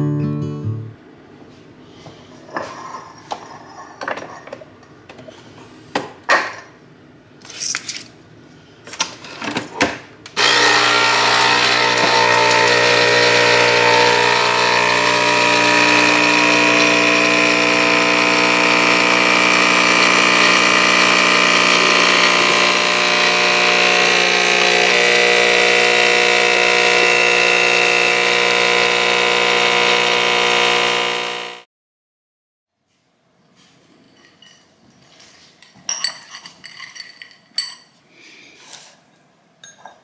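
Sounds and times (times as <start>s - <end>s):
coffee machine pump humming: 10.4s - 31.6s.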